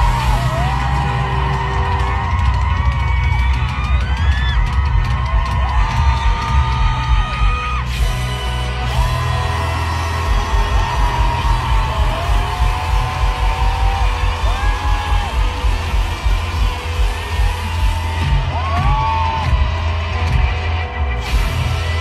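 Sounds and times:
crowd whooping and yelling: 0.0s - 22.0s
pop-rock band over speakers: 0.0s - 22.0s.

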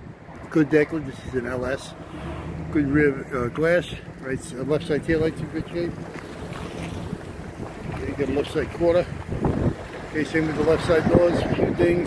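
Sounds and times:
wind blowing across microphone: 0.0s - 12.0s.

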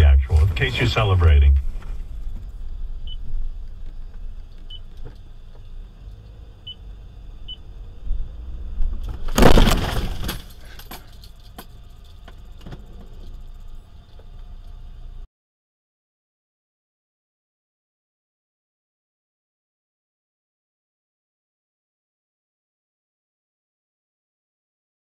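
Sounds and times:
car road and engine rumble: 0.0s - 15.3s
clinks and rattles: 9.1s - 14.2s
loud crash: 9.2s - 10.6s.

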